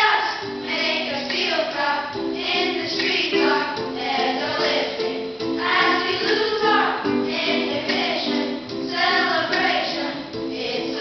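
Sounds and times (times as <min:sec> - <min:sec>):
children singing pop song: 0:00.0 - 0:11.0.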